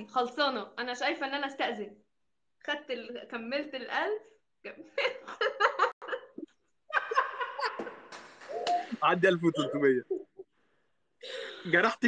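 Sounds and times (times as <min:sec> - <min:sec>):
person laughing: 0:05.0 - 0:10.4.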